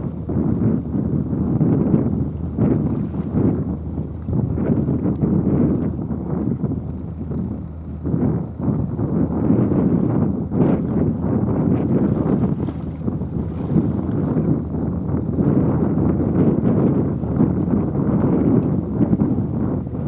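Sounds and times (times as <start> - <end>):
faint high whine: 0.0 - 20.0
wind buffeting microphone: 0.0 - 20.0.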